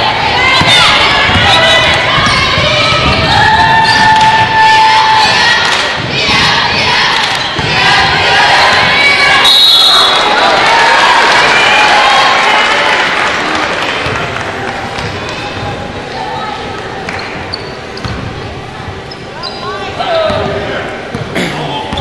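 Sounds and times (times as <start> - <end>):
crowd shouting and cheering: 0.0 - 19.0
referee whistle: 9.4 - 10.3.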